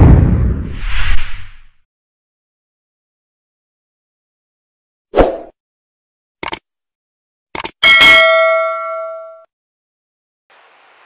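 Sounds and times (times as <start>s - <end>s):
quick clicks: 6.4s - 6.6s, 7.5s - 7.8s
bell-like ding: 7.8s - 9.5s.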